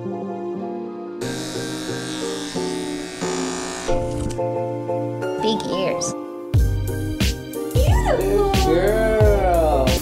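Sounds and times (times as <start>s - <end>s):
keyboard music: 0.0s - 10.0s
electric clippers buzzing: 1.2s - 4.4s.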